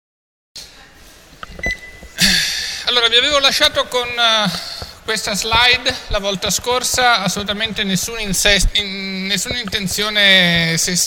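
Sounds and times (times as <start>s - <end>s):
microphone hiss and room noise: 0.6s - 11.0s
faint high beep: 1.4s - 2.2s.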